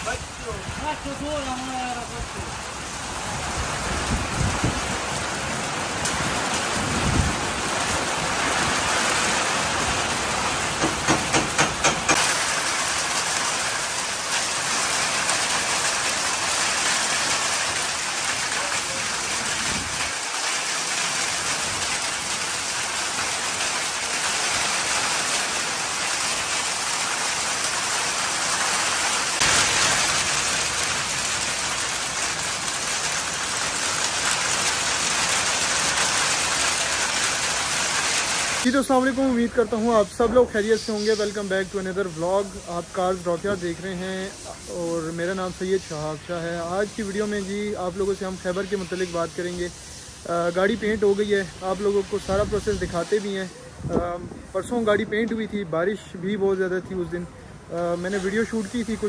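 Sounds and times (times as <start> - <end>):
heavy rain on pavement and roofs: 0.0 - 59.0
sharp taps: 10.8 - 12.2.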